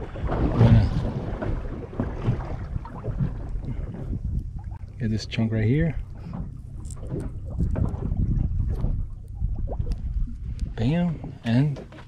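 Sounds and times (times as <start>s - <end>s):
wind buffeting microphone: 0.0s - 11.4s.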